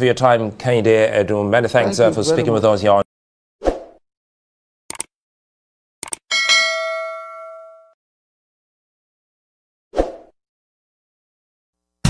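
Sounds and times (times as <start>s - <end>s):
mouse clicks: 4.9s - 5.1s, 6.0s - 6.2s
bell ding: 6.3s - 8.0s.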